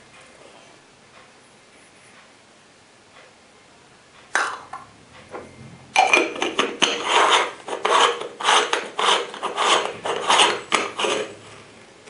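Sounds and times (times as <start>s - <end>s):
metal threads grating: 5.2s - 11.4s
short scrape: 6.4s - 11.7s.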